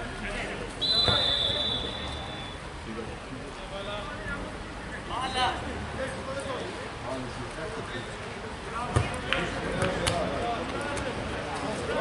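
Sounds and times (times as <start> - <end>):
distant shouts: 0.8 - 2.7
football kicked with dull thud: 1.0 - 1.2, 8.9 - 9.2.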